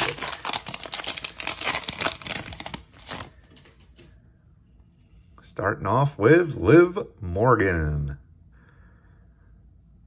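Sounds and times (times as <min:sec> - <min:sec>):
foil wrapper tearing and crinkling: 0:00.0 - 0:03.4.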